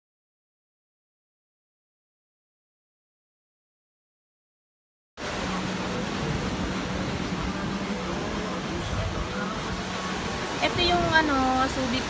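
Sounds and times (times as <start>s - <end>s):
low rumble on microphone: 5.2s - 11.4s
waves breaking on shore: 5.2s - 12.0s.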